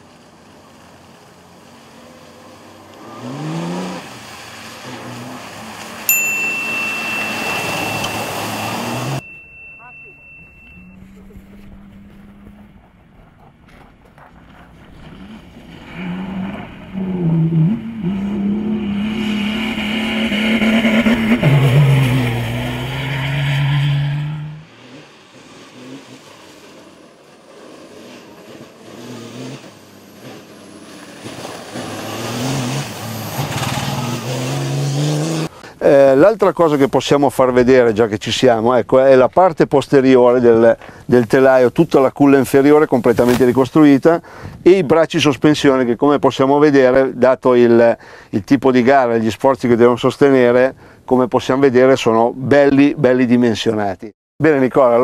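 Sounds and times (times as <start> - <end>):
off-road racer engine revving: 0.4 - 6.1, 7.2 - 9.2, 10.8 - 13.6, 14.3 - 35.6
high whistle: 6.2 - 11.1.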